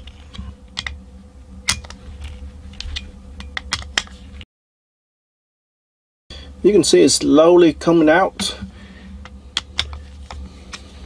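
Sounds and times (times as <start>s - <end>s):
low steady hum: 0.0s - 4.4s, 6.3s - 11.0s.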